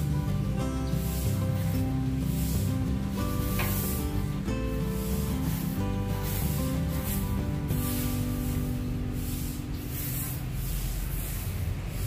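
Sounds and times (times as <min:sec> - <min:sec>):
hissing outdoor noise: 0:00.0 - 0:12.0.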